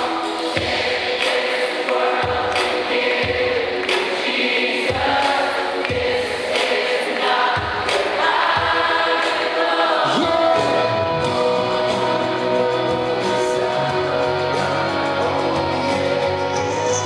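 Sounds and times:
crowd singing along: 0.0s - 17.0s
rock band playing slow song: 10.1s - 17.0s.

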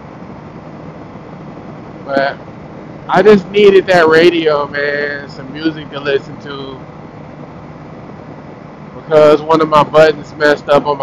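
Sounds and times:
motorcycle engine drone: 0.0s - 11.0s.

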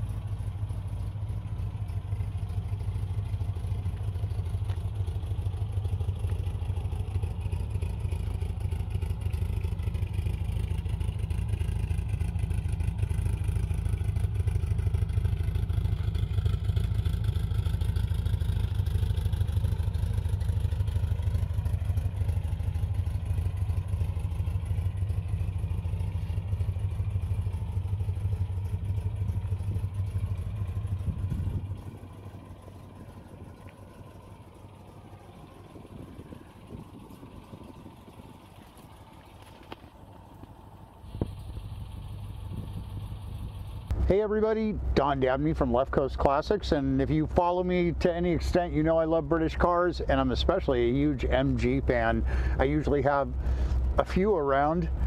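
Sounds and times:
car engine idling: 0.0s - 55.0s.

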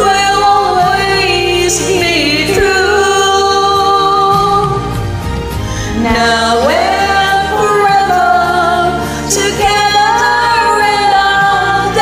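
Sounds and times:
recorded backing track: 0.0s - 12.0s
women singing a duet: 0.0s - 12.0s.

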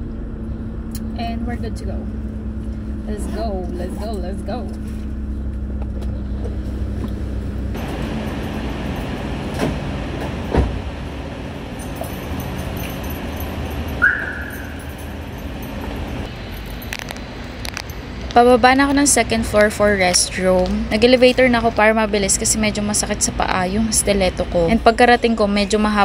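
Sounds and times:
low hum inside car: 0.0s - 26.0s
parking garage noise: 0.0s - 26.0s
car door shutting: 9.5s - 11.0s.

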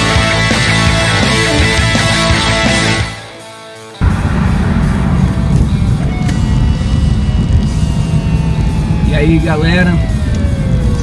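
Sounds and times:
car engine and tyre noise: 4.0s - 11.0s.

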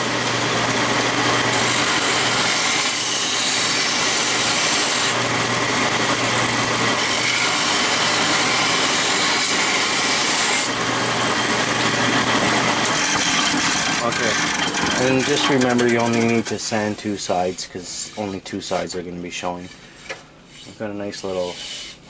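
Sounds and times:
belt sander motor hum: 0.0s - 17.0s.

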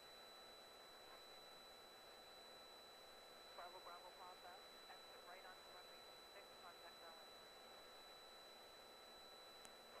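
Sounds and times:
faint voice over radio: 3.6s - 7.3s.

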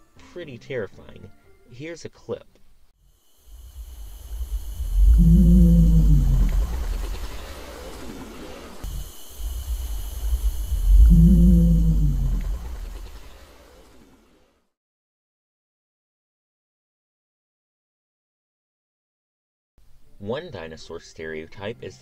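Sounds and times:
deep rumbling creature call: 3.5s - 13.4s.

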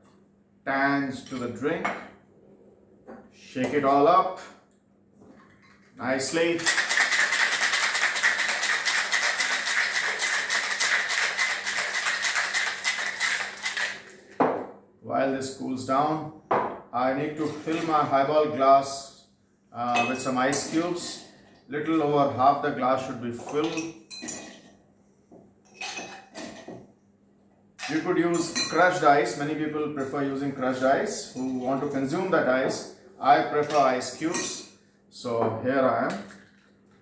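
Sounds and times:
ice rattling in cocktail shaker: 6.5s - 14.4s.

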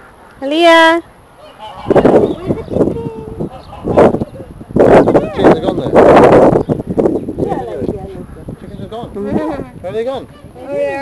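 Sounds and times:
fowl harsh raspy calls: 1.4s - 2.1s.

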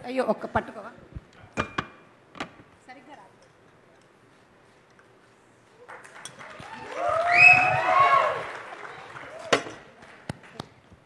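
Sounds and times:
audience cheering and applauding: 5.8s - 10.6s.

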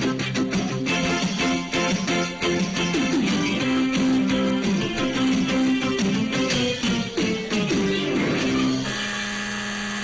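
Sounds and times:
guitar background music: 0.0s - 9.2s
electric game-show buzzer: 2.8s - 10.0s.

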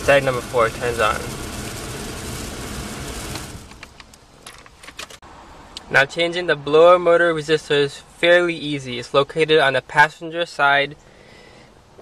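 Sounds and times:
blower fan rushing air: 0.0s - 4.4s.

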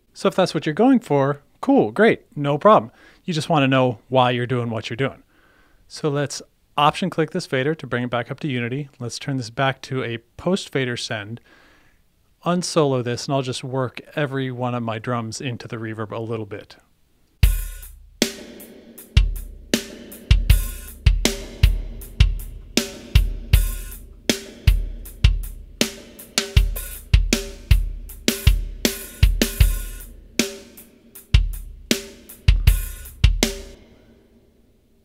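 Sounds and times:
drum loop with reverb: 17.4s - 33.9s.

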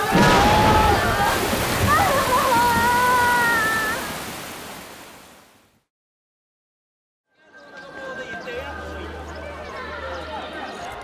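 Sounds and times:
heavy rain: 0.0s - 5.5s
rushing water: 0.0s - 5.9s.

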